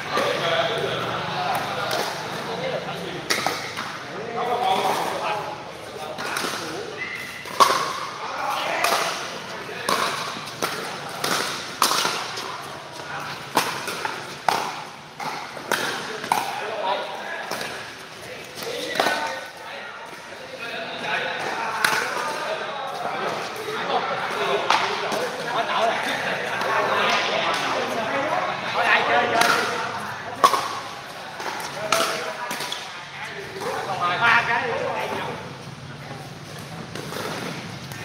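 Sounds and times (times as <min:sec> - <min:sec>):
ball bouncing on court: 0:06.1 - 0:16.6
paddles hitting plastic ball: 0:07.4 - 0:16.6, 0:29.2 - 0:32.9.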